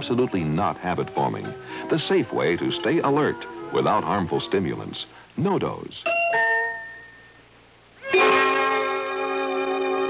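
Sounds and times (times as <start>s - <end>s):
held chord of bridge music: 0.0s - 5.1s, 8.0s - 10.0s.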